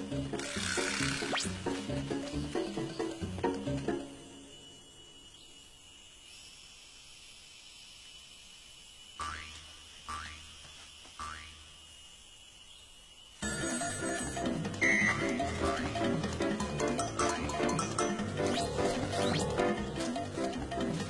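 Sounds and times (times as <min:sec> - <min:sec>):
faint high whine: 0:03.0 - 0:15.4.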